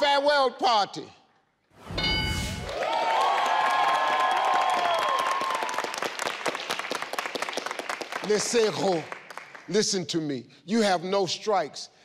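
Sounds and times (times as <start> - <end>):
game show chime: 1.9 - 2.7
studio audience applauding: 2.7 - 9.9.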